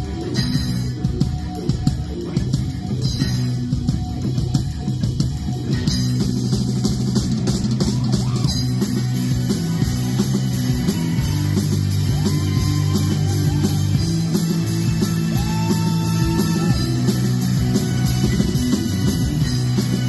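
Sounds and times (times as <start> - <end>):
distorted electric guitars: 0.0 - 20.0
drum kit and cymbals: 0.0 - 20.0.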